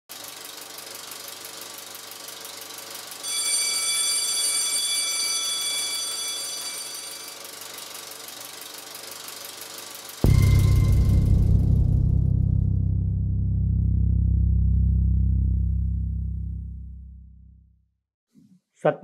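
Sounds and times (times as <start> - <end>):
film projector clicking: 0.1 - 3.2, 6.5 - 10.2
bell-like chime: 3.2 - 7.8, 10.2 - 11.5.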